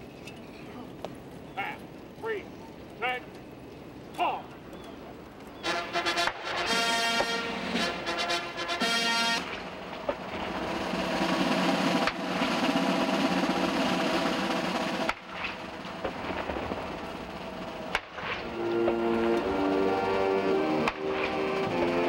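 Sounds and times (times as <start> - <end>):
band playing brass chords: 5.6 - 22.0
field gun shots with rumble: 14.8 - 19.4, 20.8 - 21.5.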